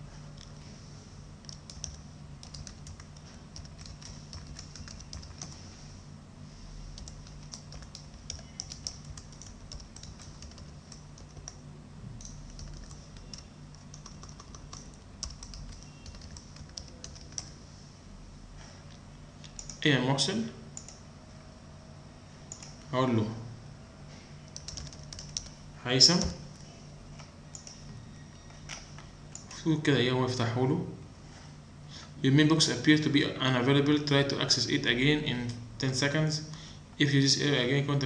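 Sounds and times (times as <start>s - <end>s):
steady low hum: 0.0s - 38.0s
computer keyboard typing: 1.4s - 5.6s, 6.9s - 11.6s, 12.2s - 17.6s, 19.4s - 19.8s, 20.8s - 21.0s, 22.5s - 22.8s, 24.5s - 26.6s, 27.2s - 27.9s.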